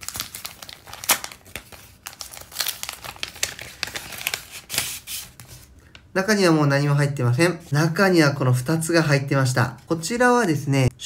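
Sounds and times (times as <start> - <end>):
paper envelope tearing: 0.0 - 5.6.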